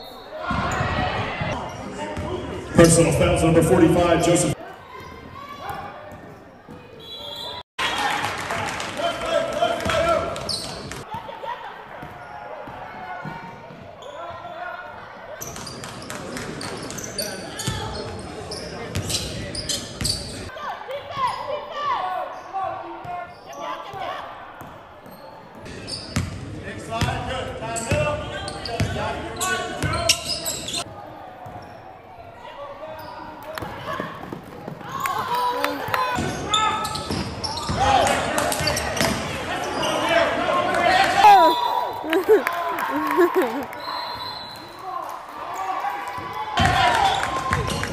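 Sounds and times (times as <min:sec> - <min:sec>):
players and spectators voices: 0:00.0 - 0:47.9.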